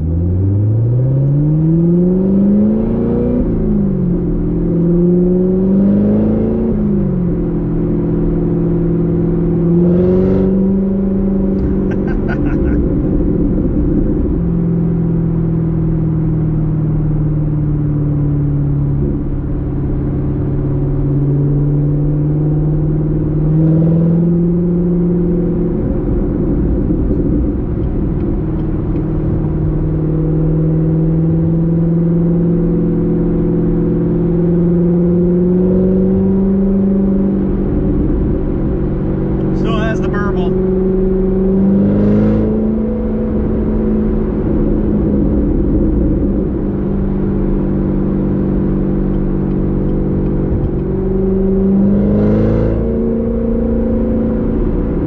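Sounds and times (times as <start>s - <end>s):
car engine while driving: 0.0s - 55.0s.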